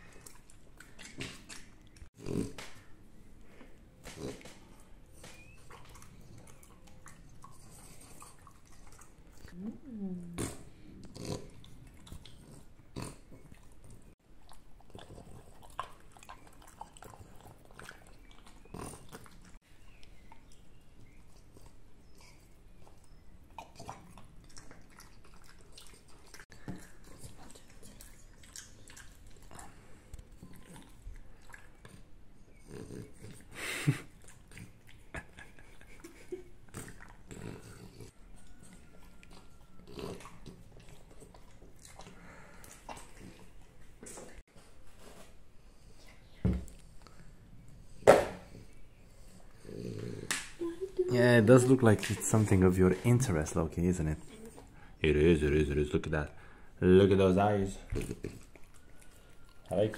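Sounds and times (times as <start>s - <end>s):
dog licking and chewing: 0.0s - 2.1s, 4.2s - 9.6s, 13.4s - 32.2s, 38.4s - 44.4s, 57.8s - 59.9s.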